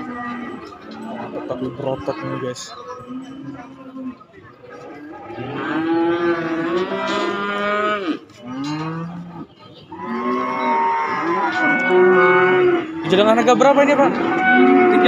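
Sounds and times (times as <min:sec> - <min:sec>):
young cattle mooing: 0:04.8 - 0:15.0.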